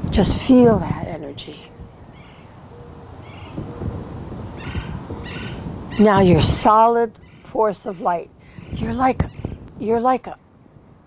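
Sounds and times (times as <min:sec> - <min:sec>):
low soft hooting bird: 0:01.7 - 0:06.1
short higher bird calls: 0:02.0 - 0:03.6, 0:04.6 - 0:06.2.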